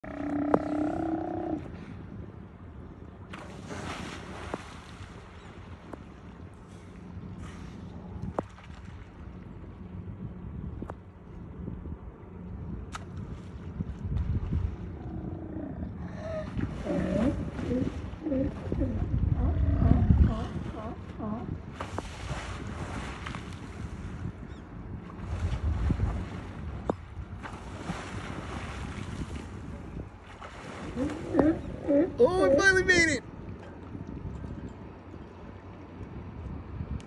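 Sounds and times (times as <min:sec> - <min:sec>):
sea lions growling: 0:00.0 - 0:01.7, 0:14.9 - 0:21.6, 0:30.8 - 0:32.6
sea lion heaving onto dock: 0:16.1 - 0:21.5.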